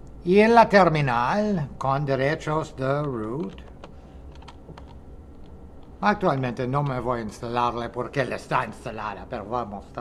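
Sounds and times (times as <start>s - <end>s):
computer keyboard typing: 3.0s - 7.0s.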